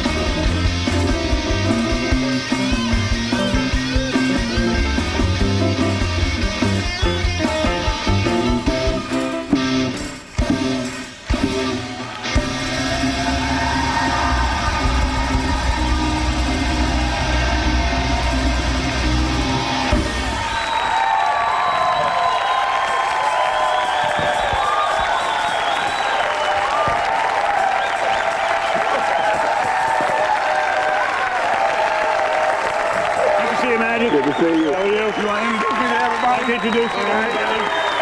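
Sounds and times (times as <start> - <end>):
live rock band playing: 0.0 - 20.4
audience cheering and applauding: 0.0 - 38.0.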